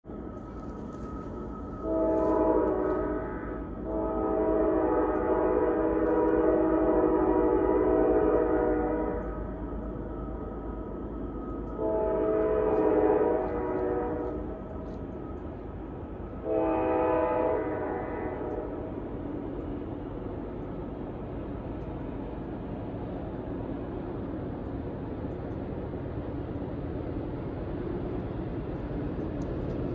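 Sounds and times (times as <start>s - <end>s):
train rumble: 0.0s - 29.9s
train air horn blasts: 1.8s - 9.4s, 11.8s - 14.6s, 16.4s - 18.9s.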